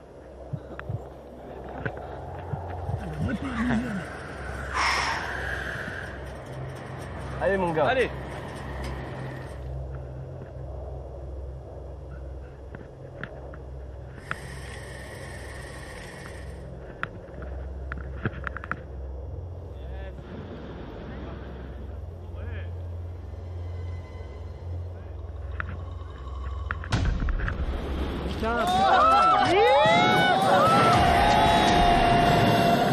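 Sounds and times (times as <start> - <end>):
wind rumbling on microphone: 0.0 - 32.9.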